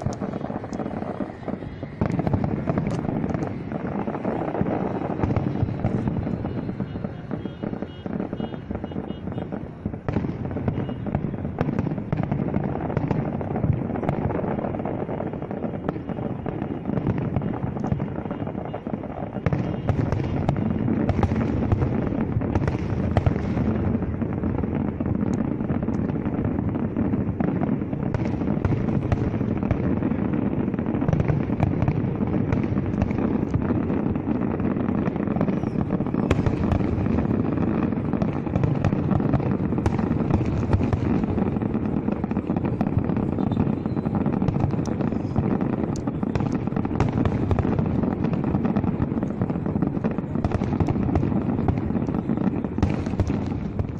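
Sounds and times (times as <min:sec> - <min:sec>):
fireworks bangs and crackling: 0:00.0 - 0:53.9.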